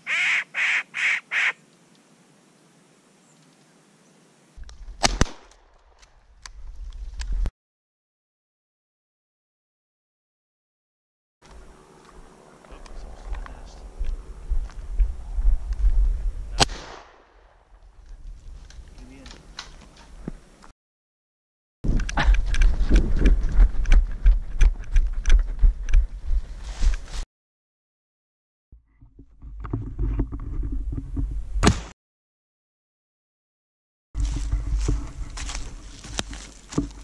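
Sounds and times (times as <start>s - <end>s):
shotgun shot with echo: 5.0s - 5.5s, 16.6s - 17.3s
low rumble on microphone: 11.6s - 16.6s
wind buffeting microphone: 12.8s - 16.6s, 21.8s - 26.9s.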